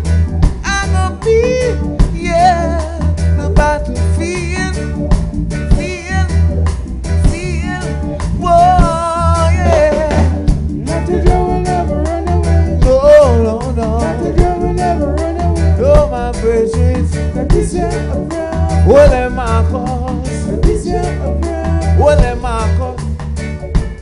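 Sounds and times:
heavy bass: 0.0 - 24.0
live reggae band: 0.0 - 24.0
person singing: 0.6 - 5.0, 5.7 - 23.0.

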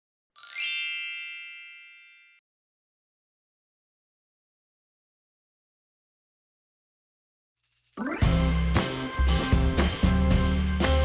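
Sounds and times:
bright ringing chime: 0.4 - 2.4.

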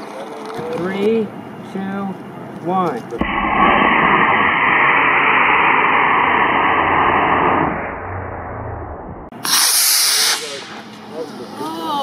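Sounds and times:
rocket motor rushing hiss: 3.2 - 11.2.

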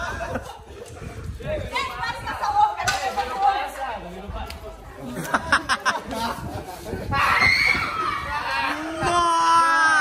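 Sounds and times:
young people talking and calling out: 0.0 - 10.0.

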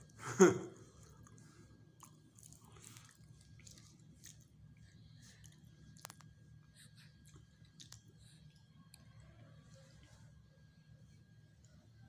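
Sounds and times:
faint chewing: 0.8 - 11.8.

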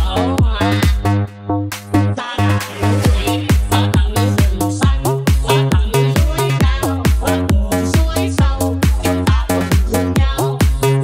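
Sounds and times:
fast dance music: 0.0 - 11.0.

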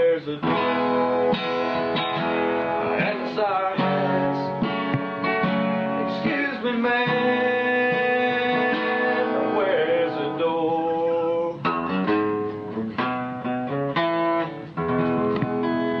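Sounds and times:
strummed acoustic guitar chords: 0.0 - 16.0.

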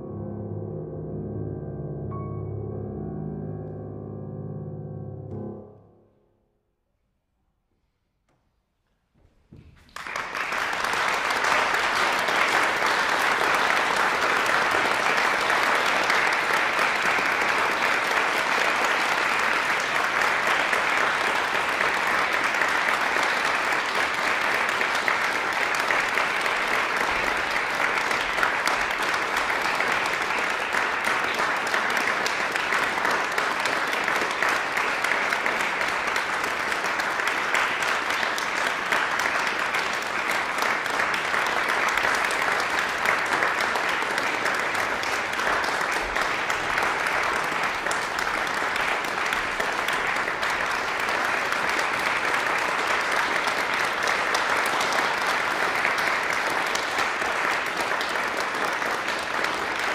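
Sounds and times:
audience applauding: 9.7 - 59.9.

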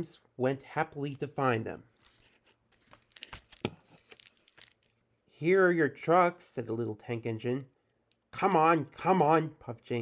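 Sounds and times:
paper crinkling: 1.9 - 5.0.

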